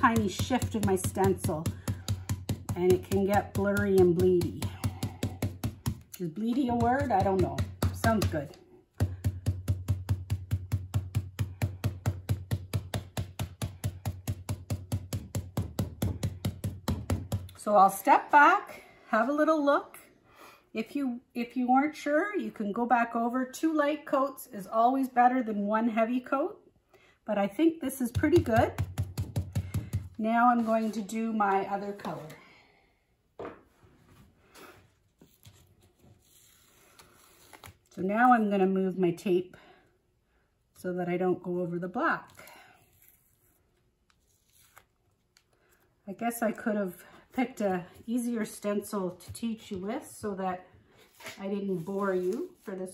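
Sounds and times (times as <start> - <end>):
stencil brush dabbing taps: 0.0 - 17.6.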